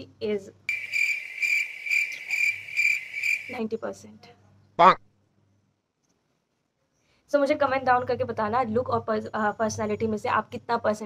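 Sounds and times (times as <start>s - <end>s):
cricket chirping: 0.7s - 3.6s.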